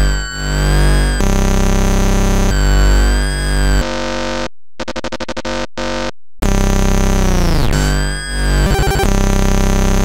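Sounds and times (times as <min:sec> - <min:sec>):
electronic buzzing tones: 0:07.8 - 0:09.8.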